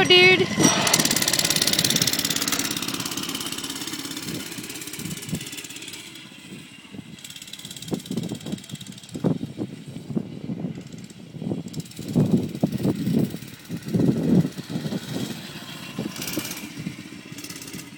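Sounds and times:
mini bike engine buzzing: 0:00.0 - 0:17.9.

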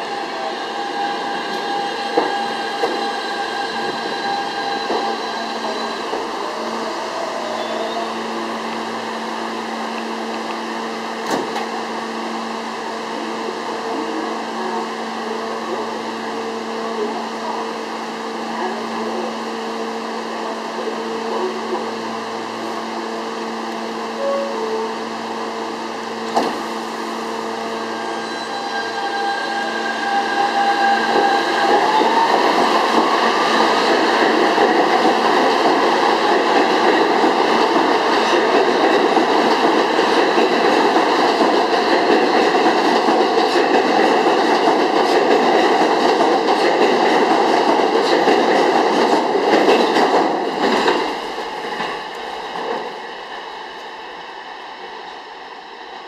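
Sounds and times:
train cars rumbling on rails: 0:00.0 - 0:54.2
subway train electrical hum: 0:00.0 - 0:56.0.

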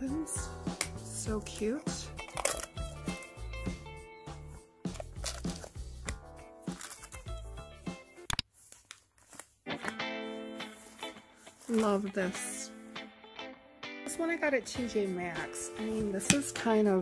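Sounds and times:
music with bass line and beat: 0:02.1 - 0:06.6.

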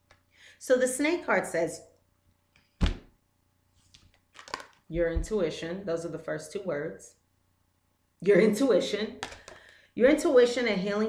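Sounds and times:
card knocking: 0:02.8 - 0:03.1
card rustle: 0:03.8 - 0:04.8.

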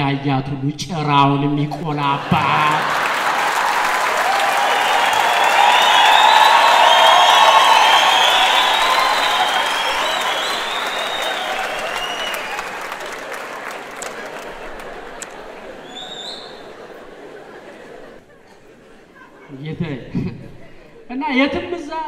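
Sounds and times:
large audience applauding: 0:02.2 - 0:19.4.

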